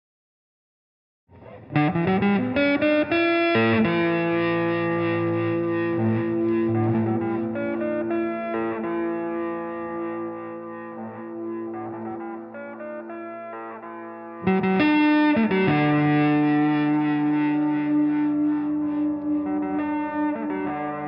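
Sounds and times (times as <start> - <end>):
electric guitar with effects: 1.3 - 21.0.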